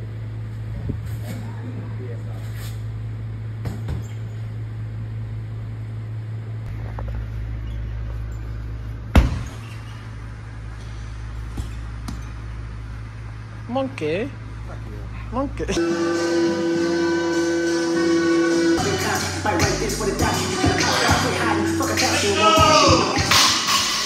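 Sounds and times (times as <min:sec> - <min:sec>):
gym hum: 0:00.0 - 0:24.0
punch thudding on heavy bag: 0:09.1 - 0:09.5.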